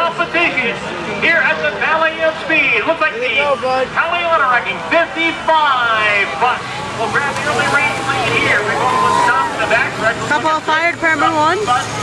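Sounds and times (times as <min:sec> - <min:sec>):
low engine hum: 0:00.8 - 0:12.0.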